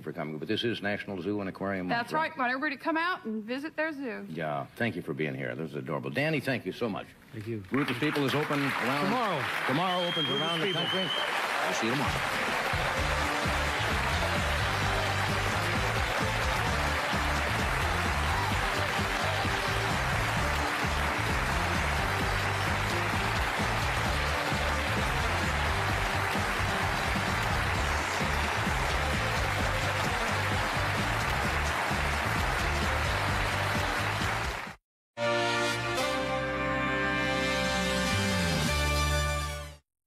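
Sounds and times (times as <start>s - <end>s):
audience applause: 7.7s - 34.8s
band playing music: 12.2s - 34.6s.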